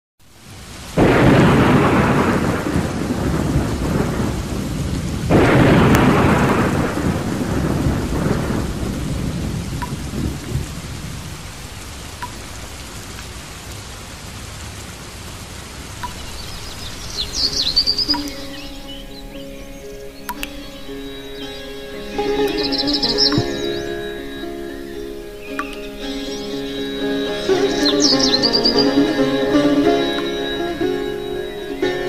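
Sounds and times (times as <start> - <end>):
steady rain: 0.2 - 32.0
rumbling thunderclaps: 0.8 - 12.7.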